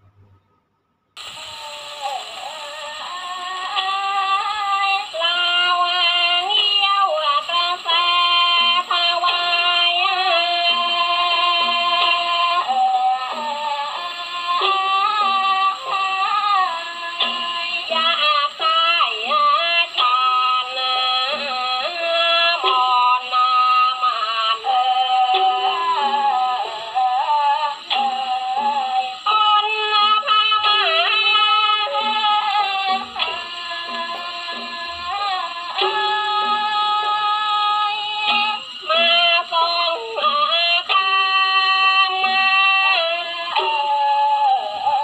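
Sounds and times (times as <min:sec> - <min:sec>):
ensemble music on a gramophone: 0:00.0 - 0:45.0.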